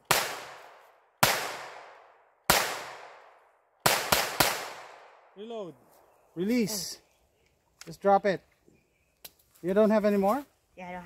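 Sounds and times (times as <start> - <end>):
pistol shots with echo: 0.0 - 5.3.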